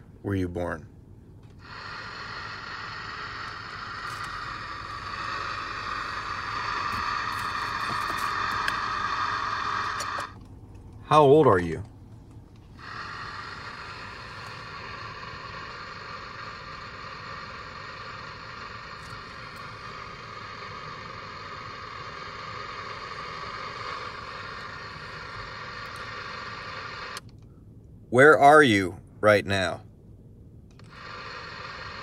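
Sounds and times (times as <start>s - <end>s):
radio static hiss: 1.5s - 10.4s, 12.7s - 27.2s, 30.8s - 32.0s.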